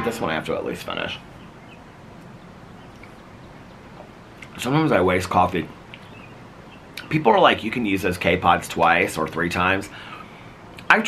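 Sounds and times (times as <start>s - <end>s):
low outdoor background noise: 0.0s - 11.0s
faint bird chirp: 0.1s - 8.4s.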